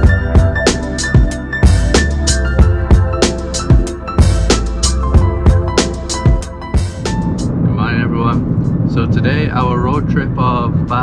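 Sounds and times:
car road and engine rumble: 0.0s - 11.0s
man talking: 7.6s - 11.0s.

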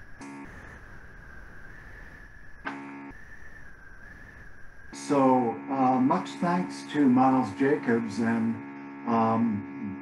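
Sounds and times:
high-pitched whine: 0.0s - 10.0s.

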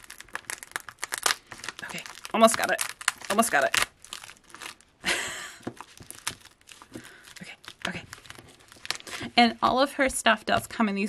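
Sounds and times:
foil mailer crinkling: 0.0s - 9.4s.

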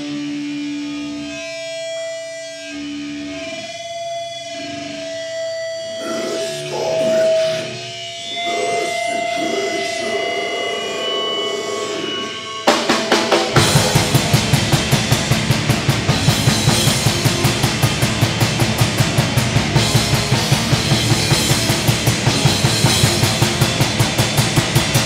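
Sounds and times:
distorted electric guitars: 0.0s - 25.0s
drum kit fast beat: 12.7s - 25.0s.

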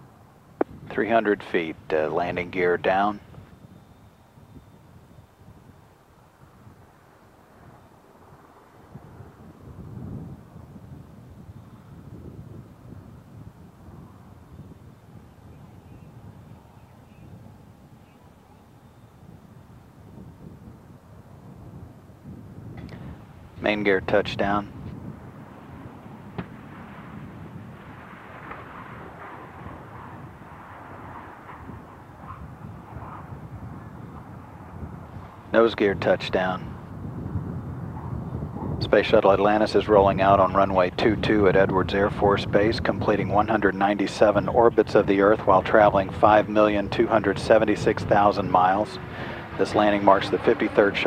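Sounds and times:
rumbling rush of wind: 0.0s - 51.0s.

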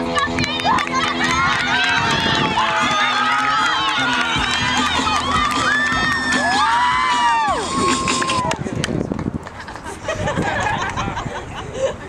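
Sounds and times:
teenagers cheering and shouting: 0.2s - 8.8s.

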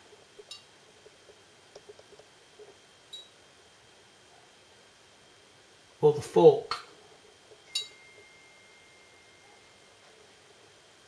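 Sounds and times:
faint high whine: 6.0s - 11.0s.

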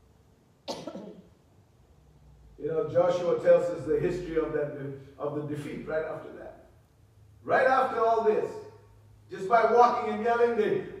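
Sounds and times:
person coughing: 0.7s - 1.3s.

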